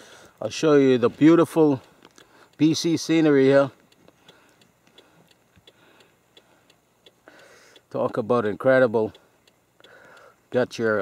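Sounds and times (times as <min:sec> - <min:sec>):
faint even ticking: 0:00.0 - 0:11.0.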